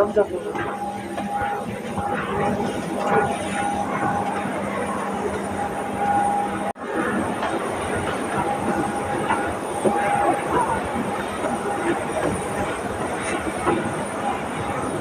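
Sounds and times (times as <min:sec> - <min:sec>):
airliner mechanical hum: 0:00.0 - 0:15.0
passengers chattering: 0:00.0 - 0:15.0.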